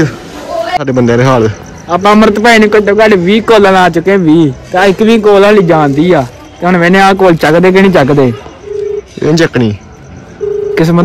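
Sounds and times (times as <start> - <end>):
phone ringback tone: 8.1 - 11.0.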